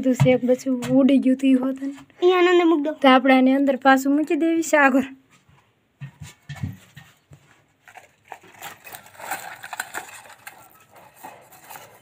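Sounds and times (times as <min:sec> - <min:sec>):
rustling: 0:06.2 - 0:12.0.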